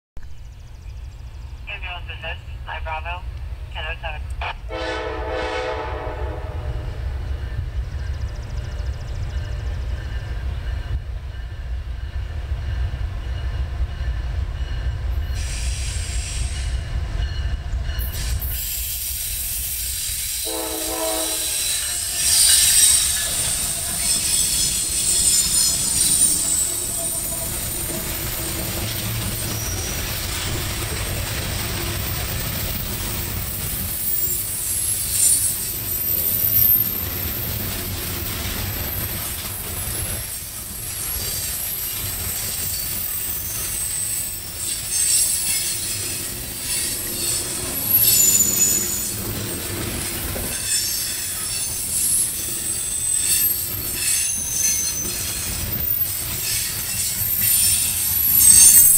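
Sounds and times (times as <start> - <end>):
diesel locomotive engine rumble: 0.2 - 58.9
train horn blast: 4.6 - 7.2, 20.4 - 22.2
wheel-on-rail noise: 21.5 - 58.9
high-pitched wheel squeal: 42.6 - 46.0, 46.7 - 49.1, 50.6 - 58.9.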